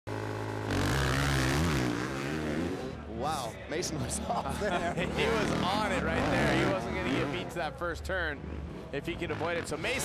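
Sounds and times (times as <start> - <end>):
motocross bike engines revving: 0.1 - 10.0.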